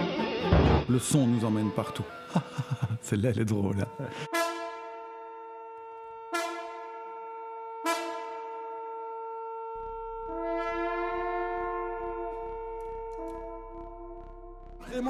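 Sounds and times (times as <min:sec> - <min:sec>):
electric trombone with effects: 0:07.8 - 0:15.0
low rhythmic pulse: 0:08.6 - 0:15.0.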